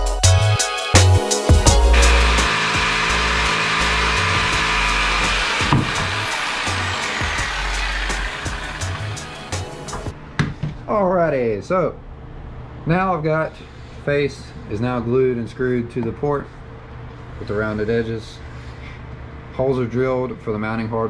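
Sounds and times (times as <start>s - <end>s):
background beat with bass drum: 0.0s - 3.1s
electric router cutting wood: 1.3s - 10.1s.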